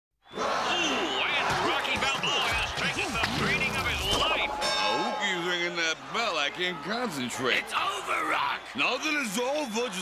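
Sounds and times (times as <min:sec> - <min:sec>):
excited voices shouting: 0:00.3 - 0:03.2, 0:06.1 - 0:10.0.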